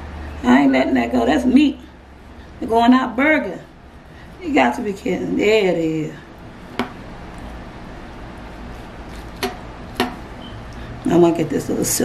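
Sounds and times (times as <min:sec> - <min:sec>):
knife knocking on cutting board: 0:06.8 - 0:07.0.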